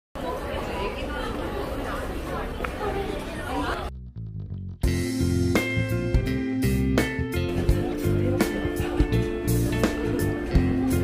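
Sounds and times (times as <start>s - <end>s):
indistinct chatter: 0.2s - 3.9s, 7.6s - 11.0s.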